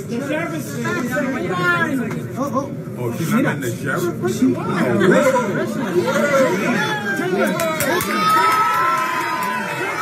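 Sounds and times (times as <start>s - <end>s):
crowd talking and shouting: 0.0s - 10.0s.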